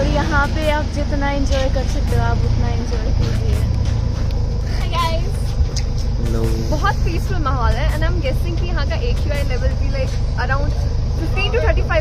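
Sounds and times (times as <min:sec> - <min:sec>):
steady low rumble: 0:00.0 - 0:12.0
voices talking: 0:00.0 - 0:12.0.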